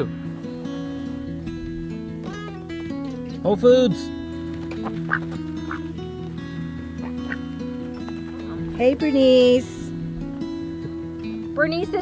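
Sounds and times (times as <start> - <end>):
guitar music: 0.0 - 12.0
duck quacking: 4.8 - 5.9, 7.0 - 7.5.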